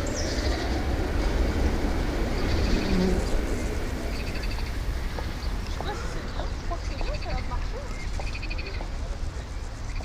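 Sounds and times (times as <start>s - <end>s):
birds chirping: 0.0s - 10.0s
low city rumble: 0.0s - 10.0s.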